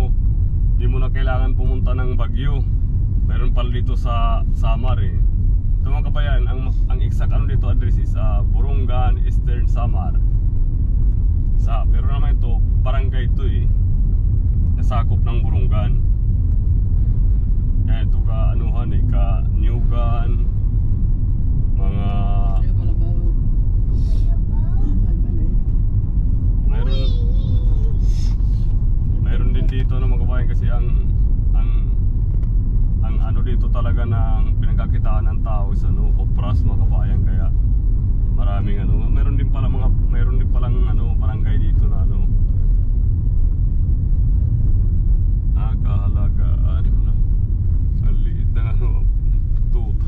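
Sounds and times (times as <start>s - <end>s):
car driving rumble: 0.0s - 50.0s
people talking: 0.8s - 2.6s, 3.3s - 5.2s, 5.9s - 10.2s, 11.6s - 13.7s, 14.8s - 16.0s, 17.9s - 20.4s, 21.8s - 23.3s, 24.0s - 25.6s, 26.7s - 28.4s, 29.2s - 32.0s, 33.0s - 37.5s, 38.4s - 42.3s, 45.6s - 47.2s, 48.0s - 49.0s, 49.7s - 50.0s.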